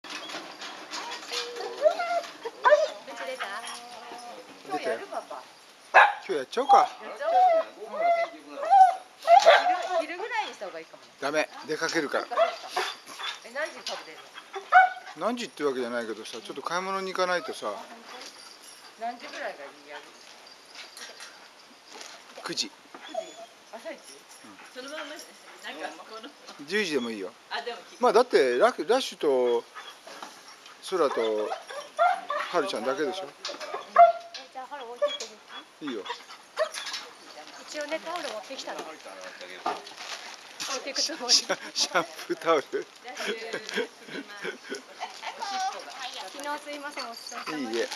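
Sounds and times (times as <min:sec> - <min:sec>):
metal gate clicking and rattling: 0:00.0 - 0:04.5
dog whining and yelping: 0:00.1 - 0:04.5, 0:06.6 - 0:10.6, 0:12.3 - 0:15.2, 0:22.9 - 0:27.2, 0:29.4 - 0:37.2, 0:44.5 - 0:47.9.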